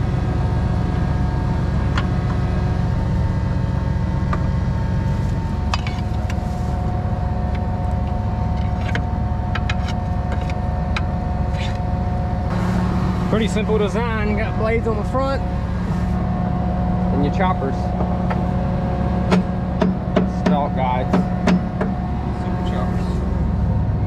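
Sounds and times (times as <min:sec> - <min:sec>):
tractor engine idling: 0:00.0 - 0:24.0.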